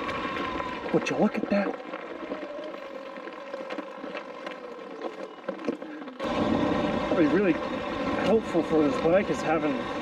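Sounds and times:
electric motor whine: 0:00.0 - 0:10.0
tyres crunching on gravel: 0:00.0 - 0:10.0
wind rumble: 0:00.0 - 0:10.0.

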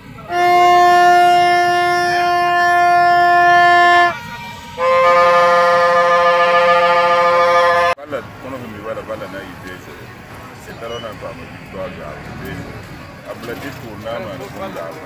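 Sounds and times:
plastic horn blasts: 0:00.2 - 0:08.0.

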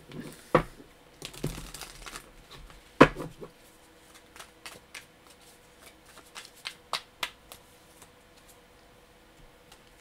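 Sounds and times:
cards being shuffled: 0:04.0 - 0:08.6.

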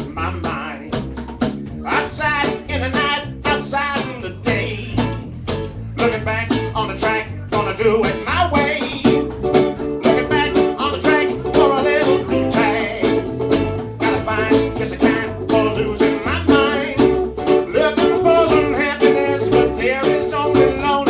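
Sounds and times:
bass line: 0:00.0 - 0:21.0
ukuleles strummed briskly: 0:00.0 - 0:21.0.

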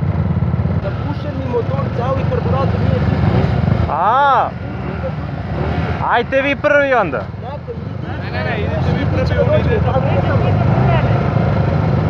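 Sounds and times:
small motorcycle engine idling: 0:00.0 - 0:12.0.

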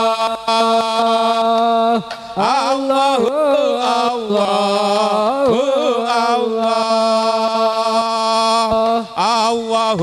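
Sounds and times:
man chanting devotional song: 0:00.0 - 0:10.0.

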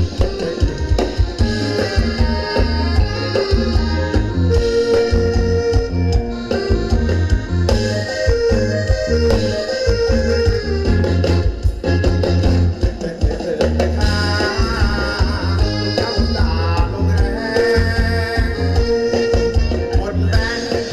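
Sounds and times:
live band playing dance music: 0:00.0 - 0:20.9.

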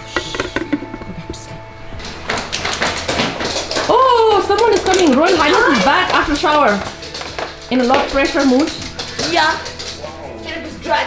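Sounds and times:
dog paws tapping on wooden stairs: 0:02.0 - 0:10.2.

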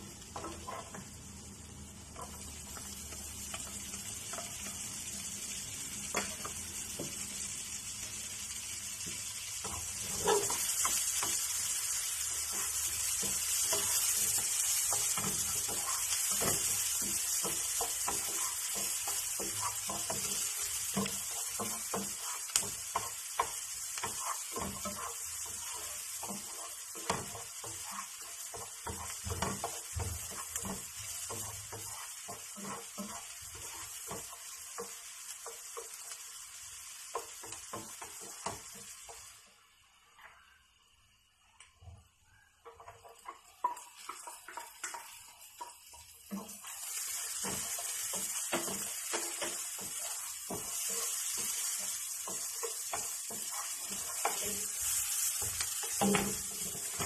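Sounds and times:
onion sizzling in frying pan: 0:00.0 - 0:57.0
wooden spatula scraping pan: 0:12.4 - 0:35.0, 0:46.3 - 0:57.0.

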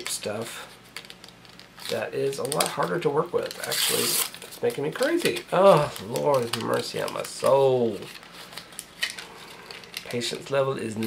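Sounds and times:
foil tape crinkling: 0:00.9 - 0:10.4.

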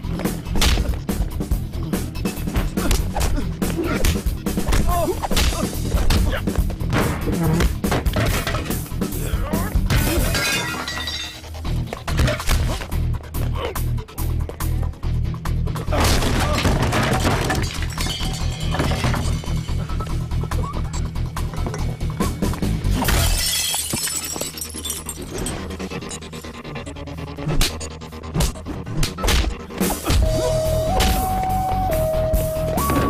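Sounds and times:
dramatic background music: 0:00.0 - 0:23.5, 0:24.4 - 0:33.0
vase shattering: 0:10.1 - 0:11.5, 0:16.0 - 0:19.6, 0:23.0 - 0:25.6
glass smashing: 0:10.2 - 0:11.5, 0:16.0 - 0:19.6, 0:23.0 - 0:25.6
glass shards tinkling: 0:23.2 - 0:26.3.

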